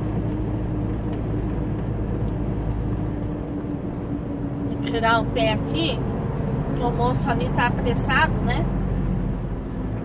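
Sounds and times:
road noise: 0.0 - 10.0
truck diesel engine droning: 0.0 - 10.0.

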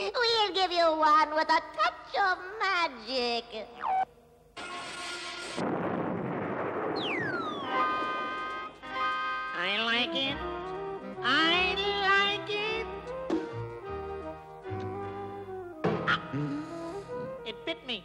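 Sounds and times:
falling whistle: 7.0 - 8.4.

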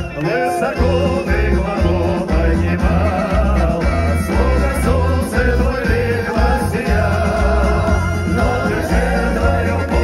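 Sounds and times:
band with heavy bass beat: 0.0 - 10.0
vocal ensemble singing: 0.0 - 10.0.

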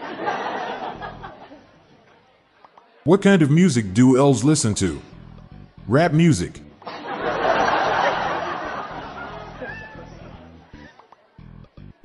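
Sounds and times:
audience laughter and murmuring: 0.0 - 2.3, 5.9 - 11.4.

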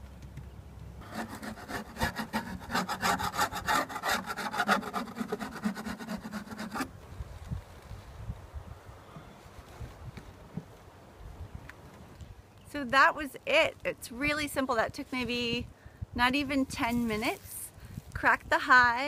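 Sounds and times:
metal tool scraping wood: 1.0 - 6.9.

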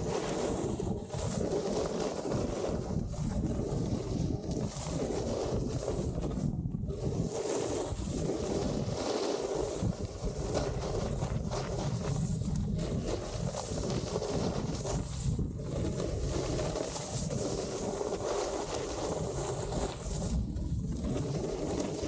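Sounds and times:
snowboard scraping packed snow: 0.0 - 22.0
wind buffeting microphone: 0.0 - 22.0.

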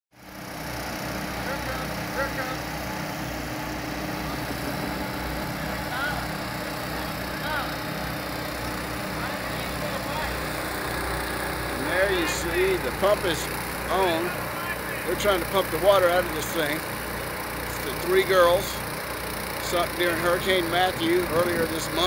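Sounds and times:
gasoline water pumps running: 0.2 - 22.0
faint voices: 11.7 - 16.8.

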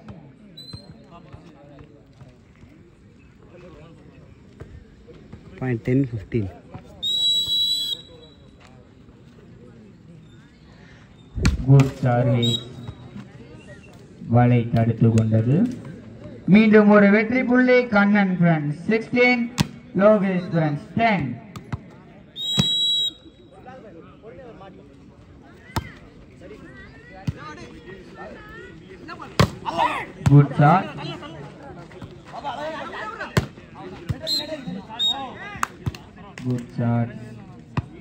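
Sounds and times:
faint chatter of voices: 0.0 - 16.5, 21.4 - 38.0
referee's whistle blast: 7.0 - 8.4, 12.3 - 13.0, 22.4 - 23.5, 34.2 - 35.3.

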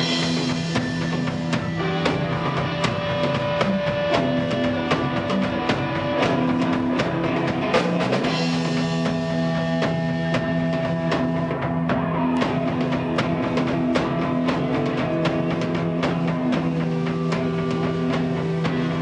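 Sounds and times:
bass guitar: 0.0 - 19.0
drum kit beat: 0.0 - 19.0
electric guitars: 0.0 - 19.0.

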